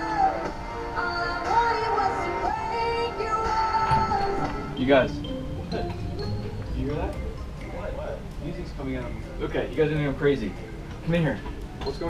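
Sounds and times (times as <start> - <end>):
music through small speaker: 0.0 - 8.2.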